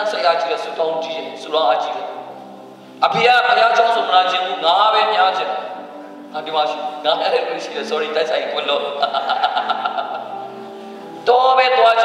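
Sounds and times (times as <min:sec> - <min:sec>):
man speaking through microphone: 0:00.0 - 0:02.2, 0:03.0 - 0:09.3, 0:11.2 - 0:12.0.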